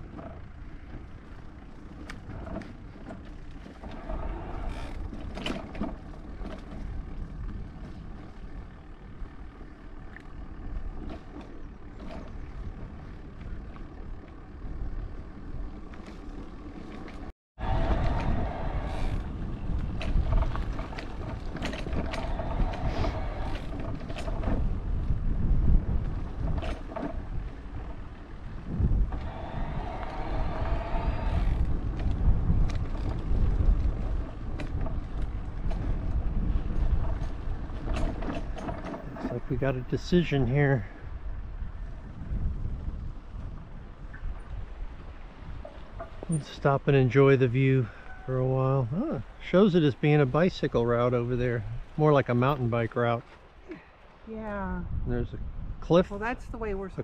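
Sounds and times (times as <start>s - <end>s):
bicycle clicks and rattles: 0.0s - 46.3s
wind buffeting microphone: 17.6s - 57.0s.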